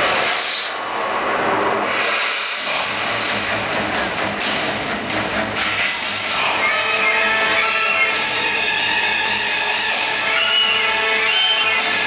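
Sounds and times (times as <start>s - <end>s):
loud steady rushing noise: 0.0s - 12.0s
music from outdoor loudspeakers: 1.9s - 12.0s.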